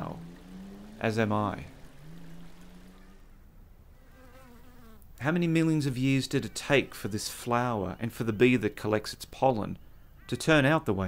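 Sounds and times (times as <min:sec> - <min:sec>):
honeybee buzzing: 0:00.0 - 0:03.4, 0:04.0 - 0:05.1.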